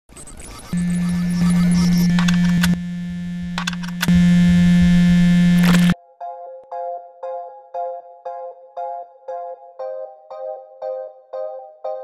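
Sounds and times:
glitchy clicks: 0.1 - 6.0
low electronic buzz: 0.7 - 6.0.

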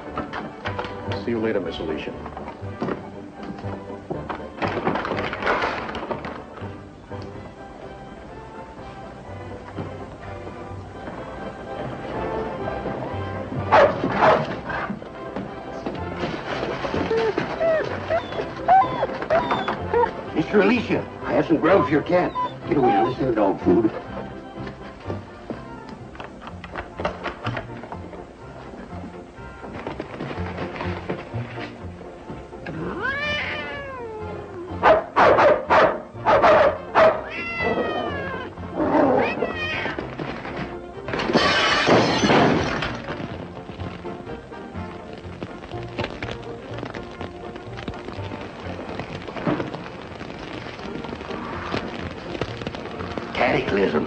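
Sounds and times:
film score music: 0.0 - 54.0
cat yowling and meowing: 17.6 - 20.2, 21.7 - 23.3, 32.7 - 34.8, 37.1 - 40.0.

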